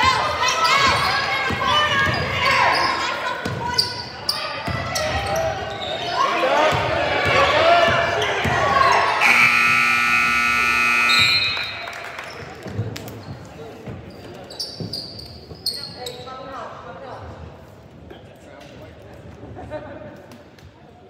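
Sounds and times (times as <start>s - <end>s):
electric buzzer: 9.2s - 11.6s.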